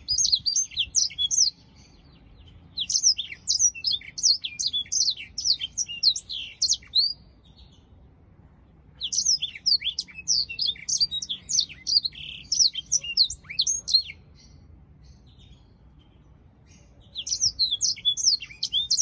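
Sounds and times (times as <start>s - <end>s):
canary singing: 0.0s - 8.0s, 8.9s - 19.0s.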